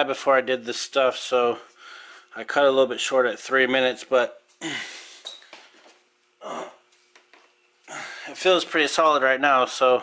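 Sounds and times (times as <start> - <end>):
faint steady hum: 0.0 - 10.0
man exhaling: 4.6 - 5.2.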